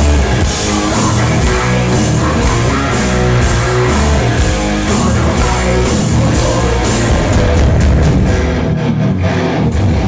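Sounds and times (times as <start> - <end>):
bass guitar: 0.0 - 10.0
distorted electric guitars: 0.0 - 10.0.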